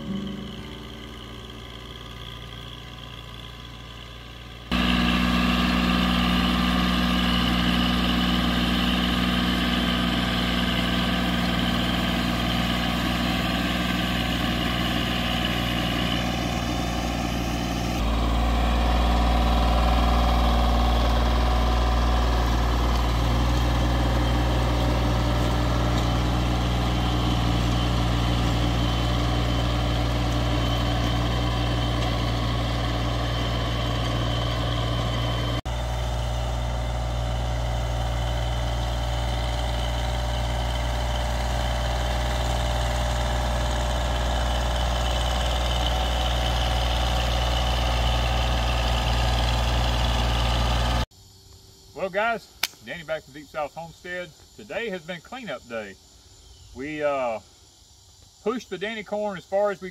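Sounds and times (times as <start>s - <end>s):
tractor engine humming: 0.0s - 51.1s.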